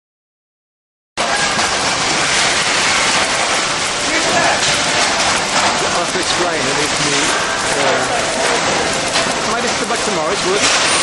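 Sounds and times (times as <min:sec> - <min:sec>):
factory floor noise: 0:01.2 - 0:11.0
packing machine hiss and clatter: 0:01.2 - 0:11.0
faint voices: 0:03.9 - 0:10.8.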